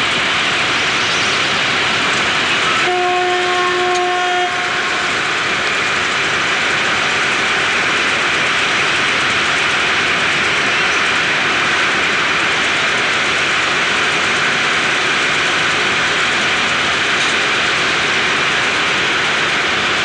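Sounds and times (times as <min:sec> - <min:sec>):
street traffic roar: 0:00.0 - 0:20.0
vehicle horn: 0:02.7 - 0:05.1.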